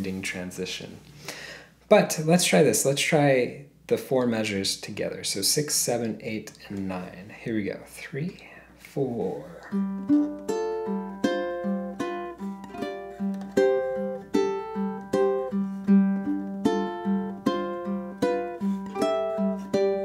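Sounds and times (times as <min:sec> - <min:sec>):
ukulele played fingerstyle: 0:09.6 - 0:20.0.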